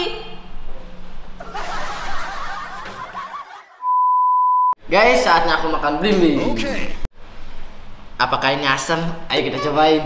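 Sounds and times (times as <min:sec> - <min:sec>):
snickering laughter: 0:01.4 - 0:03.8
steady beep tone: 0:03.8 - 0:04.8.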